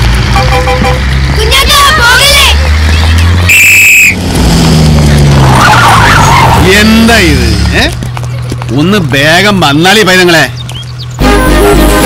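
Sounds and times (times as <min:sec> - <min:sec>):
bus engine humming: 0:00.0 - 0:12.0.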